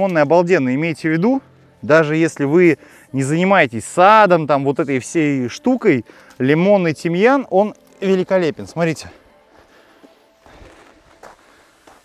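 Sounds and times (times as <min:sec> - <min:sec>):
footsteps on gravel: 0:07.7 - 0:12.0.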